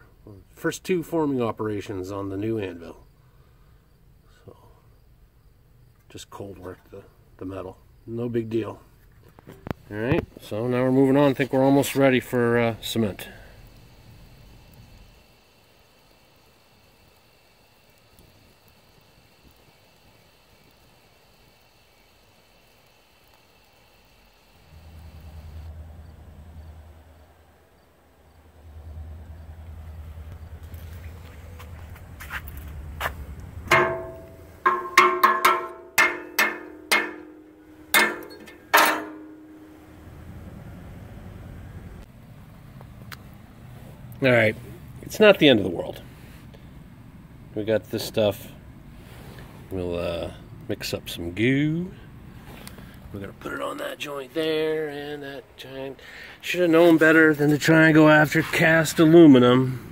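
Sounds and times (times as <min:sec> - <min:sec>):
low rumble: 0:24.6 - 0:34.7, 0:39.4 - 0:42.5
faint high drone: 0:24.6 - 0:42.1
metal clanking: 0:33.6 - 0:40.0.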